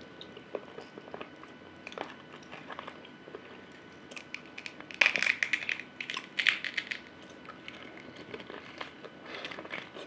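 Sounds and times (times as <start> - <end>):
crunchy eating close up: 0.3 - 10.0.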